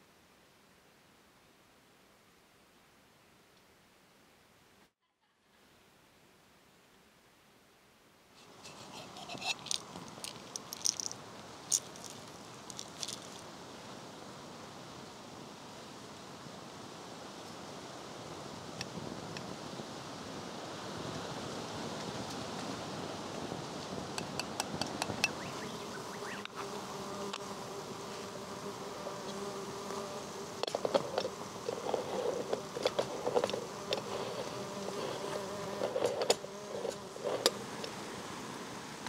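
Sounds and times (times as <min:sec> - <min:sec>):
insect buzzing: 0:08.4 - 0:13.5, 0:24.2 - 0:38.5.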